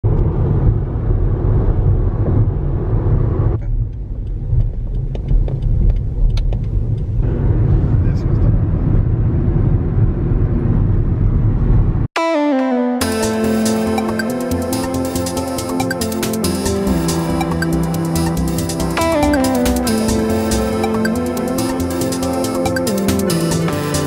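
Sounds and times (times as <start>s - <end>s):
car tyre and engine rumble: 0.0s - 12.1s.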